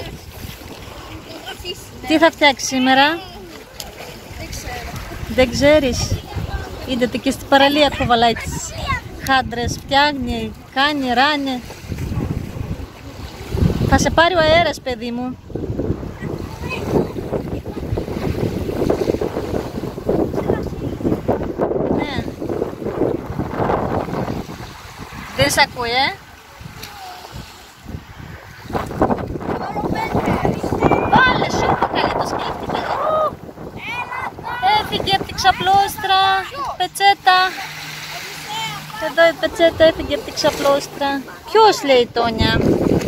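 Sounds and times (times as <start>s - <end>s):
wind on microphone: 0.0s - 43.0s.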